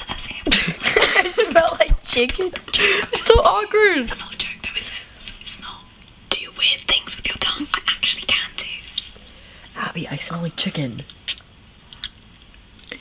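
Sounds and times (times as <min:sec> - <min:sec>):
woman whispering: 0:00.0 - 0:00.5, 0:04.0 - 0:09.0, 0:09.7 - 0:10.8
small mouth clicks: 0:11.0 - 0:13.0.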